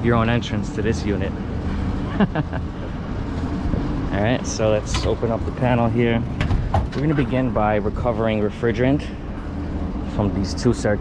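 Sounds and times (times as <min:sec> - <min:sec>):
low outdoor rumble: 0:00.0 - 0:11.0
man laughing: 0:02.0 - 0:02.9.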